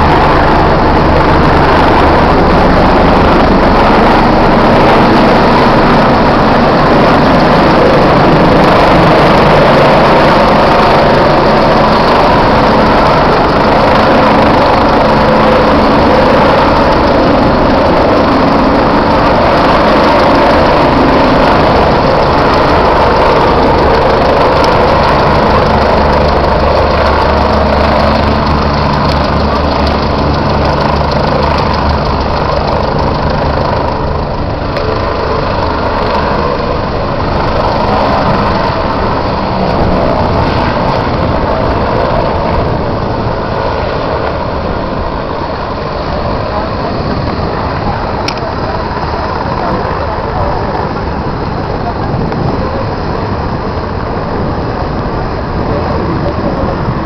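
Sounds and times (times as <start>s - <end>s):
helicopter rotor and turbines: 0.0s - 57.0s.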